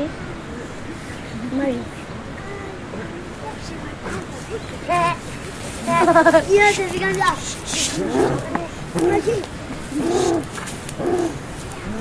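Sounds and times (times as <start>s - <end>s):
children hooting and laughing: 4.0s - 10.6s.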